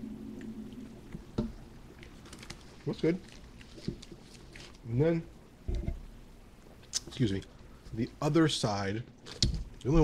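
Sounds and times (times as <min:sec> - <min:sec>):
low hum: 0:00.0 - 0:04.1
paper wrapper crinkling: 0:02.0 - 0:04.9.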